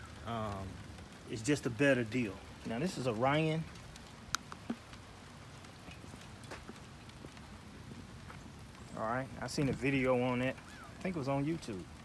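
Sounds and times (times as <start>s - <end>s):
light rain pattering: 0.0s - 12.0s
sharp raindrop ticks: 0.0s - 12.0s.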